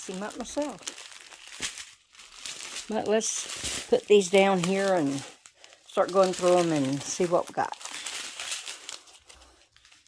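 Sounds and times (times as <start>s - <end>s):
plastic bags crinkling: 0.0s - 10.0s.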